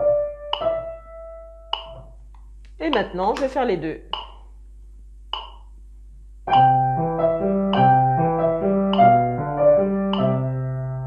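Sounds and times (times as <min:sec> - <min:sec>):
grand piano playing legato: 0:00.0 - 0:02.1, 0:06.5 - 0:11.0
metronome clicking: 0:00.5 - 0:00.8, 0:01.7 - 0:03.2, 0:04.1 - 0:04.5, 0:05.3 - 0:05.7, 0:06.5 - 0:06.8, 0:07.7 - 0:08.0, 0:08.9 - 0:09.3, 0:10.1 - 0:10.4.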